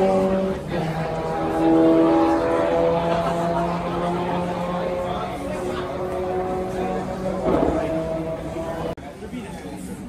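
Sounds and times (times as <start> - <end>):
racing car engine idling: 0.0 - 9.0.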